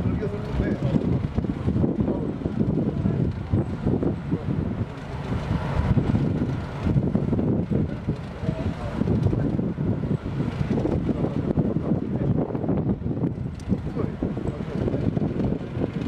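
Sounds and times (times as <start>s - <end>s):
heavy machinery rumble: 0.0s - 16.0s
wind buffeting microphone: 0.0s - 16.0s.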